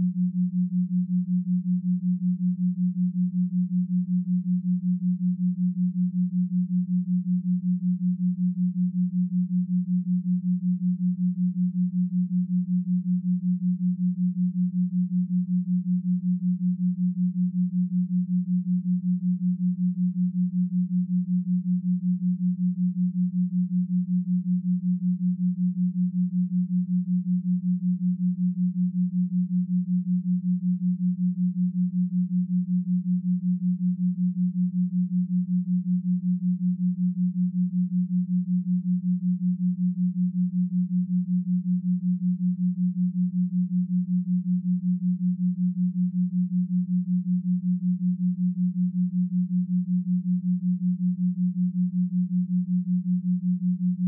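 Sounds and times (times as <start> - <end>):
pulsing low pure tone: 0.0 - 54.0.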